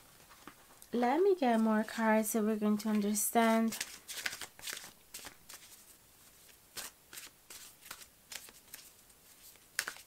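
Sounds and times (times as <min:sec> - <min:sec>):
cards being shuffled: 0:03.7 - 0:10.0.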